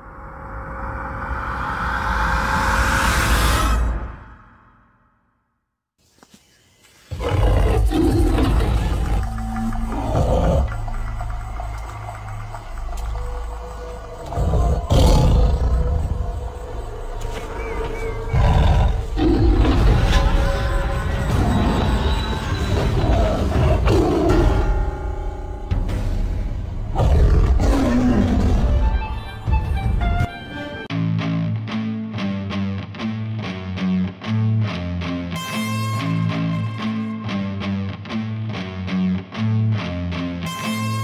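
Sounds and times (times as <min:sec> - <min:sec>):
big cat roaring: 0:07.1 - 0:11.0, 0:14.2 - 0:16.4, 0:17.9 - 0:20.4, 0:22.7 - 0:24.6, 0:26.9 - 0:28.8
music: 0:07.1 - 0:41.0.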